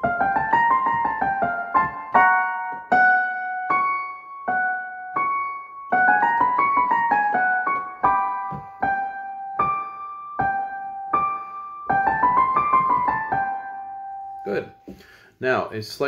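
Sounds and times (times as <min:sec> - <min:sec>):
piano playing runs and chords: 0:00.0 - 0:14.8.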